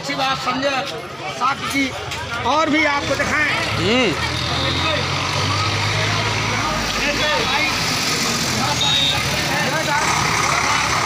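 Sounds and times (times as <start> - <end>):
motorcycle engines passing: 2.2 - 11.0.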